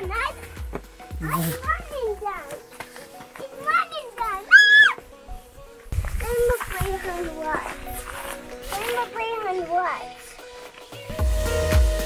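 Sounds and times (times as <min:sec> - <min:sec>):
background music: 0:00.0 - 0:12.0
child calling out: 0:04.3 - 0:05.0.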